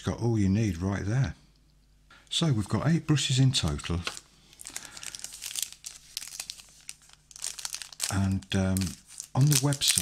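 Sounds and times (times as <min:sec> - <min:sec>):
cellophane crinkling: 0:03.6 - 0:10.0.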